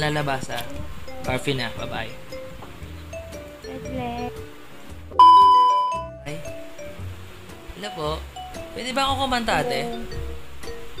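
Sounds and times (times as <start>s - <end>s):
high test-tone beep: 5.2s - 6.2s.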